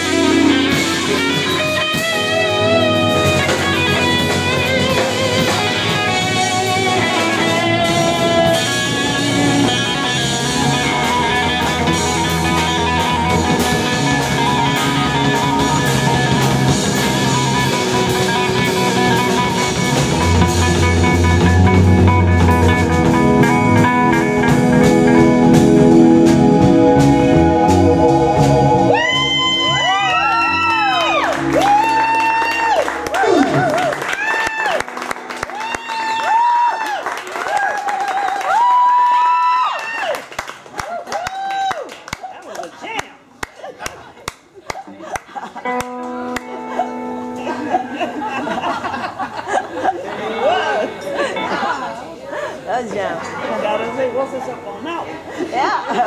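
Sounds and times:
electric bass: 0.0s - 35.7s
drum kit: 0.0s - 37.6s
electric guitar: 0.0s - 40.2s, 45.4s - 56.0s
high whoops: 28.9s - 42.2s
audience clapping: 29.8s - 46.7s.

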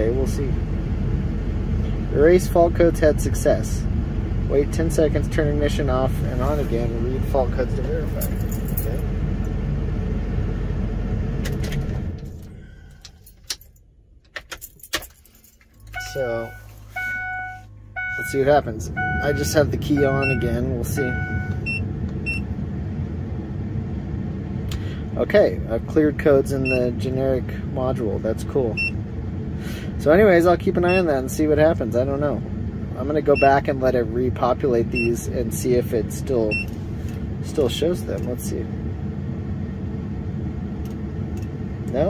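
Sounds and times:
diesel engine idling: 0.0s - 13.2s, 15.8s - 42.0s
low rumble in truck cab: 0.0s - 42.0s
short electronic beep: 15.8s - 18.3s, 19.0s - 22.4s.

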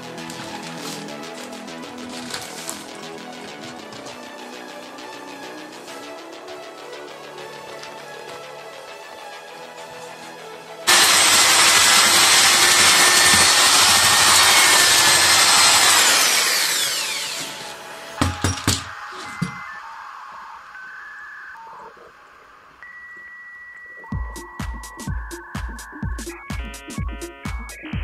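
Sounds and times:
drill mixer running in mortar: 10.9s - 17.8s
knocks: 18.2s - 19.6s.

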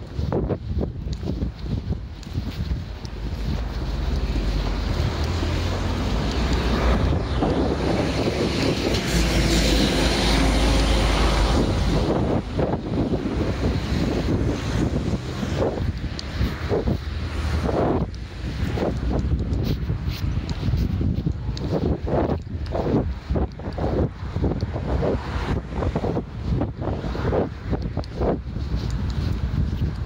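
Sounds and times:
wind buffeting microphone: 0.0s - 30.0s.

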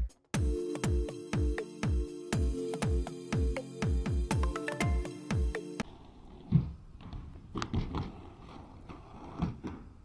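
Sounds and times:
skate wheels rolling on pavement: 5.8s - 10.0s.

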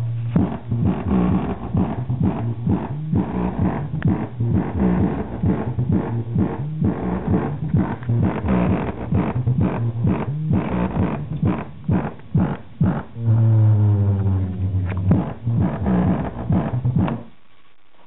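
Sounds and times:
bass-heavy music through speaker: 0.0s - 17.9s.

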